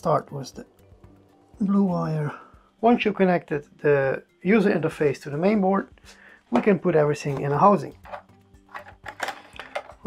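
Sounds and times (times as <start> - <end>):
background music with held notes: 0.0 - 10.0
plastic bricks clicking: 8.1 - 10.0.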